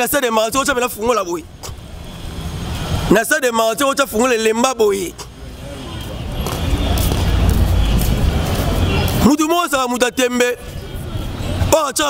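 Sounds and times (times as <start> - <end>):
road noise: 0.0 - 12.0
vehicle engine rumble: 0.9 - 3.1, 4.9 - 9.3.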